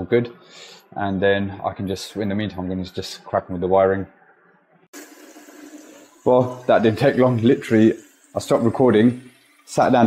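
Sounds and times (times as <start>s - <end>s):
tap water running into basin: 4.9s - 10.0s.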